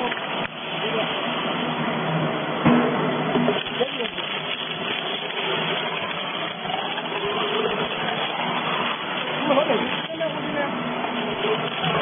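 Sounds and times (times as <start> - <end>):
shredder chewing wooden plank: 3.6 - 12.0.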